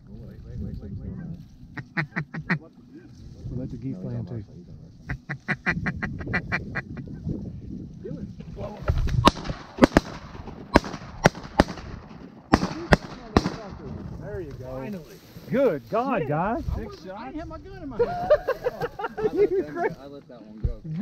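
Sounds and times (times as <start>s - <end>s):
ducks quacking: 1.8s - 2.8s, 5.0s - 7.2s
shotgun shots: 9.2s - 13.8s.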